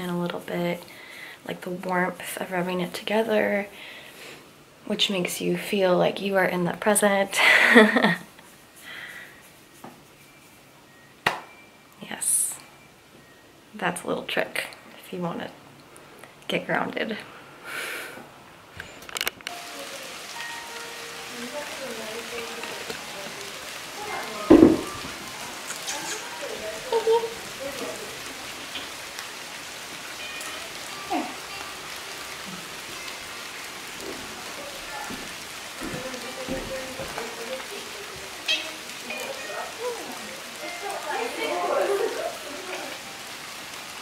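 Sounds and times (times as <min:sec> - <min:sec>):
steady rain falling: 0:00.0 - 0:44.0
sharp knock: 0:24.5 - 0:25.0.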